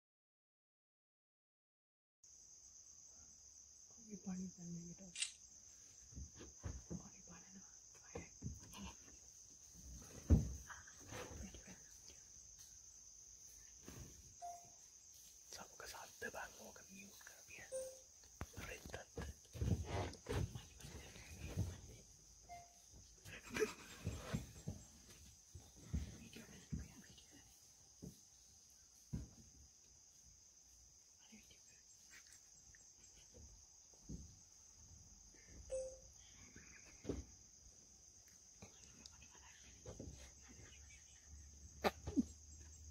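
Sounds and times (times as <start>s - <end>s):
insects trilling: 2.3s - 42.9s
high-pitched insect drone: 10.3s - 19.7s
low thumps and rustles: 18.8s - 22.1s.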